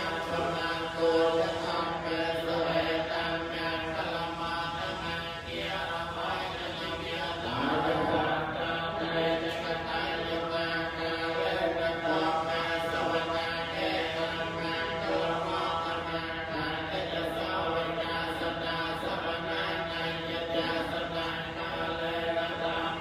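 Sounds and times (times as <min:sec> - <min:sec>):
monk chanting into microphone: 0:00.0 - 0:23.0.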